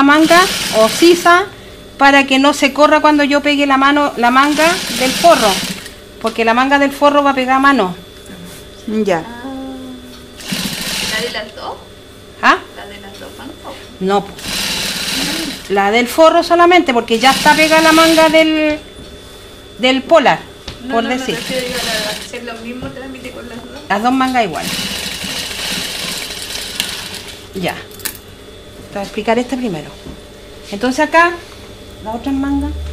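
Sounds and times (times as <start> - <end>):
high machine whine: 0.0 - 32.9
sewing machine stitching: 0.1 - 1.2, 4.4 - 5.9, 10.4 - 11.4, 14.4 - 15.7, 17.2 - 18.3, 21.3 - 22.3, 24.6 - 27.4.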